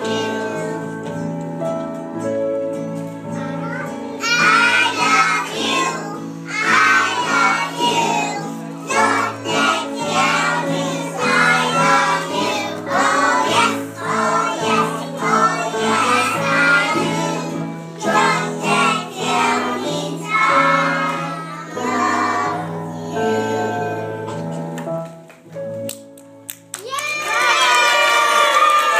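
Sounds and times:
children singing: 0.0 - 1.0, 4.2 - 24.4.

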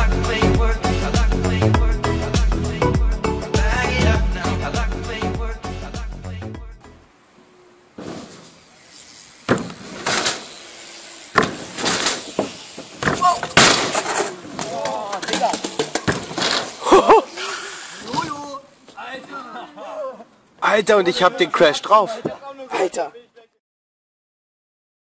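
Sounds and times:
voices calling out: 7.4 - 23.3
bike thuds on wooden ramp: 8.0 - 8.8, 9.4 - 16.8, 18.0 - 18.5.

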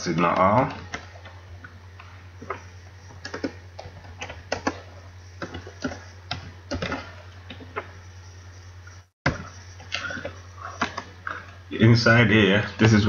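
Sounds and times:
keyboard typing clicks: 3.2 - 4.8, 5.4 - 7.9.

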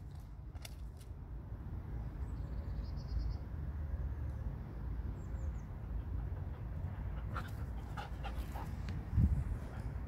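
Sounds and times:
wind rumbling on microphone: 8.3 - 10.0.

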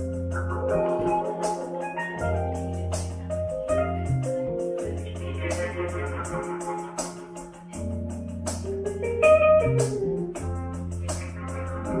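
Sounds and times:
cymbals ticking: 0.0 - 12.0
electric bass long low notes: 0.0 - 12.0
keyboard chords and melody: 0.0 - 12.0.

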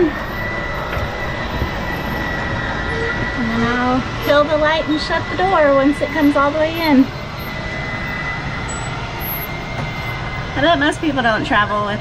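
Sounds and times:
high motor whine: 0.0 - 12.0
mechanical drone: 0.0 - 12.0.

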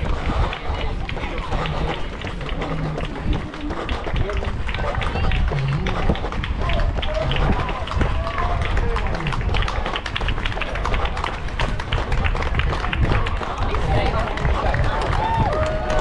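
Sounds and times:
spectators clapping: 0.0 - 16.0.

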